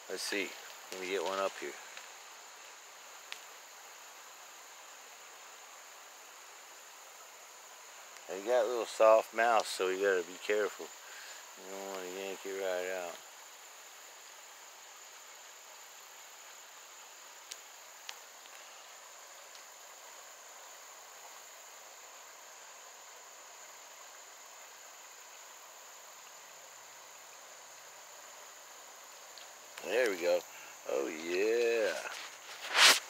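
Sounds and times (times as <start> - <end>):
insects droning: 0.0 - 33.0.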